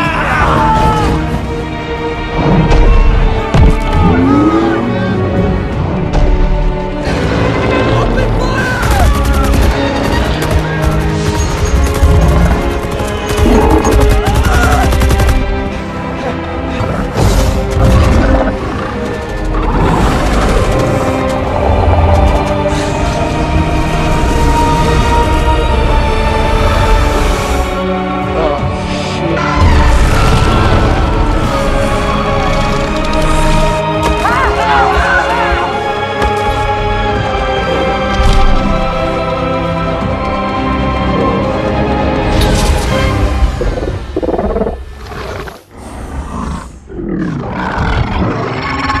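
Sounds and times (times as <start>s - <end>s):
monster roar: 43.5s - 49.0s.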